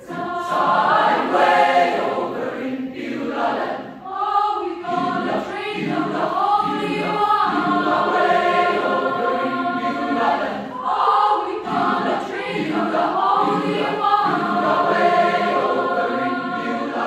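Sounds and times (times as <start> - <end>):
large choir singing: 0.0 - 17.0.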